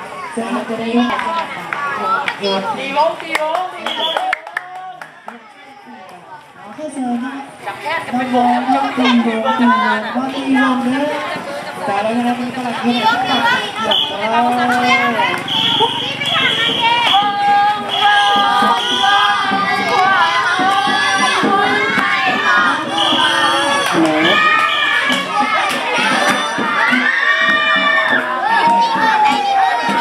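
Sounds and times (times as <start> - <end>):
voices chanting together: 8.2 - 30.0
high steady shrill tone: 22.6 - 25.0.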